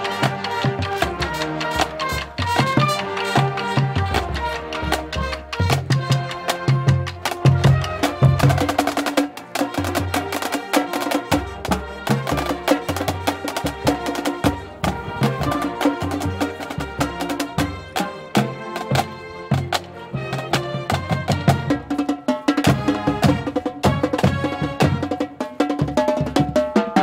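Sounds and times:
marching band playing: 0:00.0 - 0:27.0
snare and bass drums: 0:00.0 - 0:27.0.

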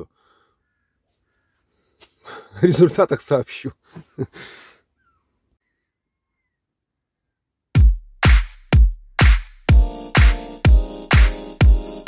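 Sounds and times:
faint bird calls: 0:00.2 - 0:02.0, 0:04.8 - 0:07.5.

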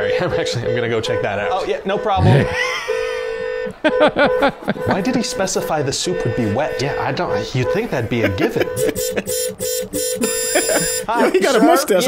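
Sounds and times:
car horn honking: 0:00.4 - 0:11.6.

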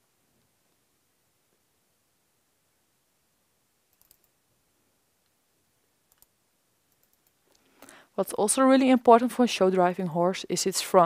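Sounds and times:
faint clicks: 0:03.9 - 0:04.3, 0:06.1 - 0:06.3, 0:06.9 - 0:08.0.

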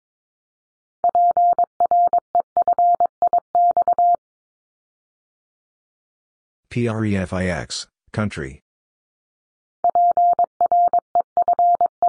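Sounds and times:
morse code beeps: 0:01.0 - 0:04.2, 0:09.8 - 0:12.0.

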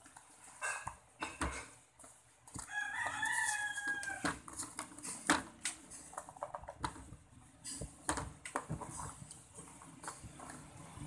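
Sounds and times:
rooster crowing: 0:02.6 - 0:04.4.

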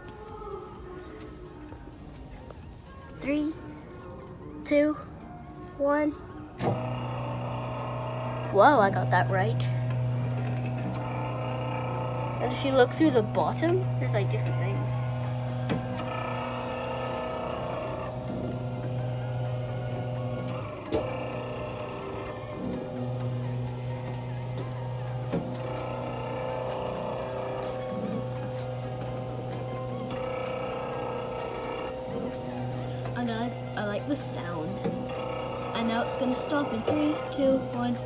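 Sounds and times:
steady mechanical hum: 0:00.0 - 0:38.0.

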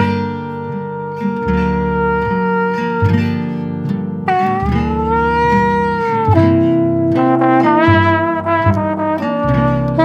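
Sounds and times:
lead horn holding bending notes: 0:00.0 - 0:03.6, 0:04.2 - 0:10.0
guitar chords: 0:00.0 - 0:10.0
plucked bass: 0:00.0 - 0:10.0.

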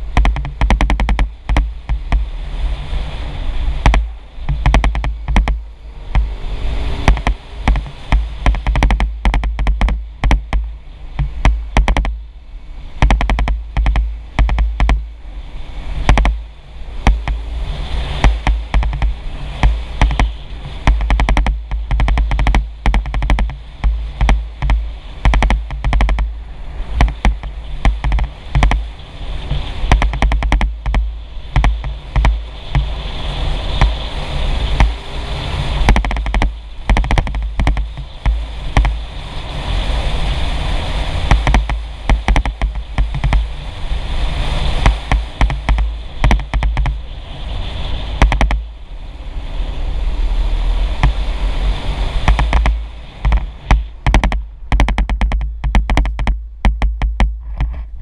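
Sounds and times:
knocks and thumps from bumpy road: 0:00.0 - 0:12.3, 0:12.9 - 0:48.8, 0:50.1 - 0:58.0
wind buffeting microphone: 0:00.0 - 0:58.0.

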